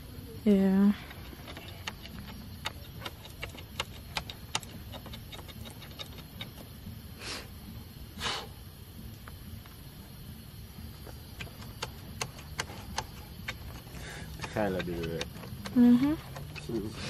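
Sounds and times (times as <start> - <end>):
tent poles clicking: 1.0 - 6.7, 11.3 - 17.0.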